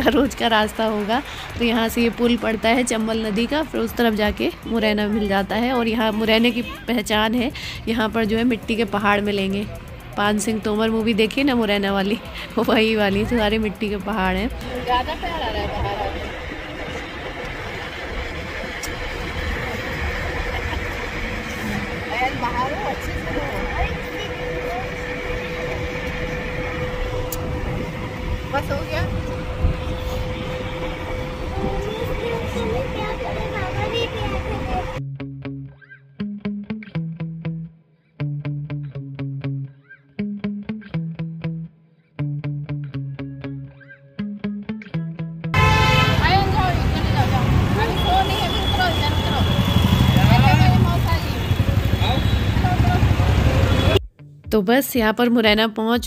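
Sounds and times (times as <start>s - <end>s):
engine and road rumble: 0.0s - 35.0s, 45.6s - 54.1s
voices talking: 0.0s - 35.0s, 46.0s - 54.0s
street traffic: 0.0s - 35.1s, 45.5s - 54.1s.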